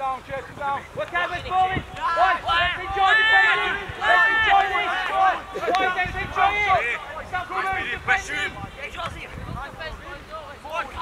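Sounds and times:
people shouting: 0:01.2 - 0:08.6.

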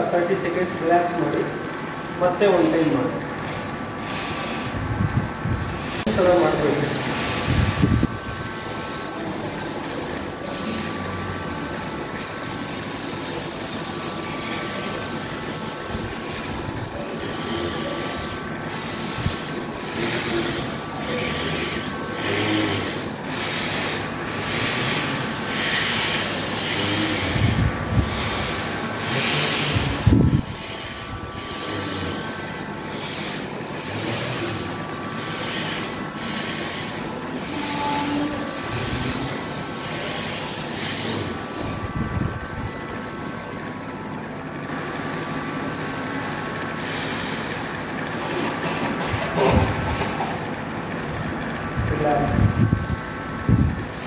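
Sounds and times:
steady hum and room rumble: 0:00.0 - 0:54.0
hissing nasal breaths: 0:03.4 - 0:44.0, 0:44.6 - 0:50.6.

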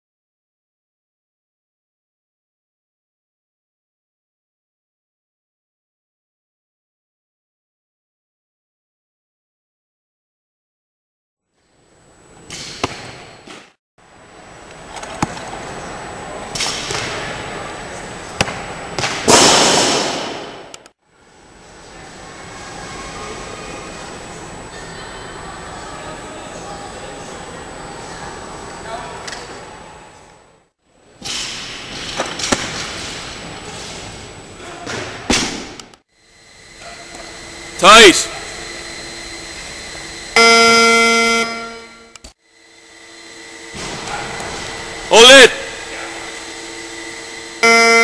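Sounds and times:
loud noisy crash: 0:19.2 - 0:20.7.

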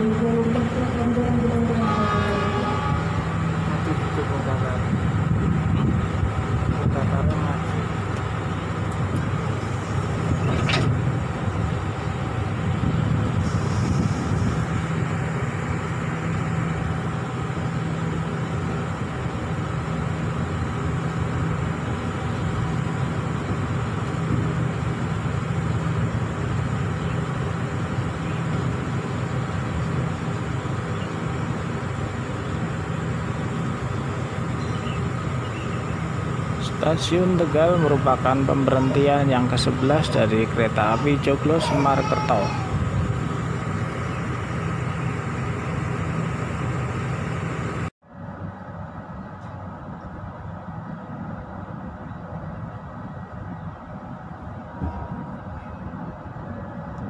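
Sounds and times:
diesel train engines rumbling: 0:00.0 - 0:57.0.

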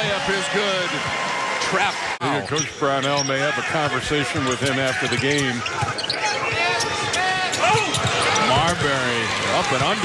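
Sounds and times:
shoe squeaks: 0:02.4 - 0:03.6, 0:04.4 - 0:08.8.

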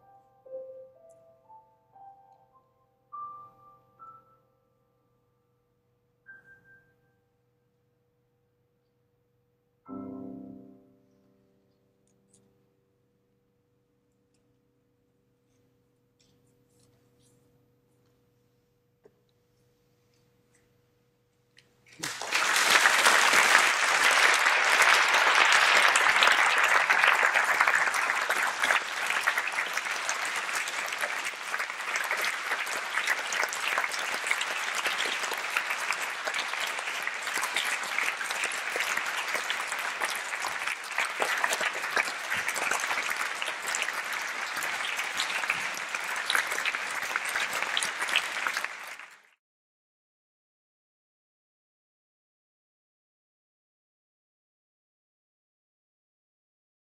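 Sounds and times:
audience applauding: 0:21.9 - 0:49.4.

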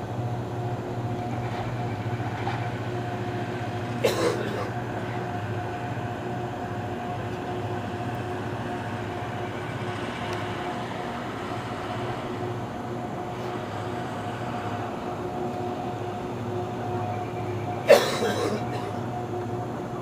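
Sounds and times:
constant whine: 0:00.0 - 0:20.0
rail grinder mechanical drone: 0:00.0 - 0:20.0.

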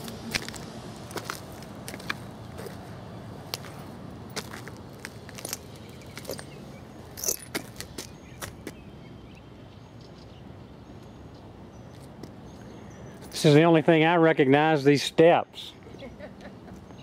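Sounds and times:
footsteps on rubble: 0:00.0 - 0:02.9, 0:03.5 - 0:06.6, 0:07.2 - 0:08.8
faint outdoor background: 0:00.0 - 0:17.0.

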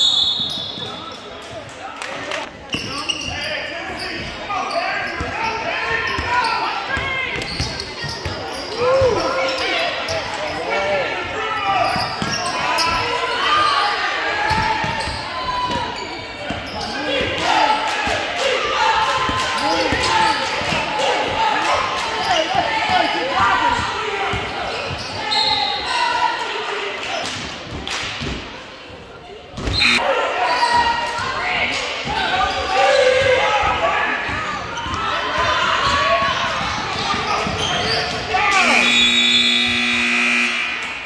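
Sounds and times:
voices and shouts echoing: 0:00.0 - 0:41.0
scoreboard horn: 0:29.8 - 0:30.0, 0:38.6 - 0:40.9.

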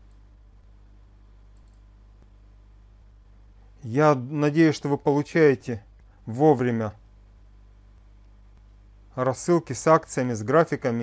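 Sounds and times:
low electrical hum: 0:00.0 - 0:11.0
faint click: 0:01.5 - 0:02.3.

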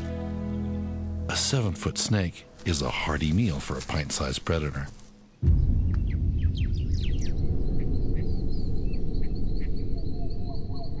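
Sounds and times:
birds chirping: 0:00.0 - 0:11.0
loud low rumble: 0:05.4 - 0:11.0.

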